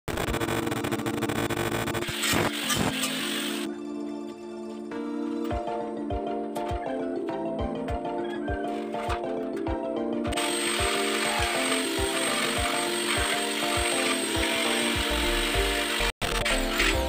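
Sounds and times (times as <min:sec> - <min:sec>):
electric drill boring into steel: 0:02.0 - 0:03.7, 0:10.4 - 0:17.0
background music with beat: 0:03.7 - 0:17.0.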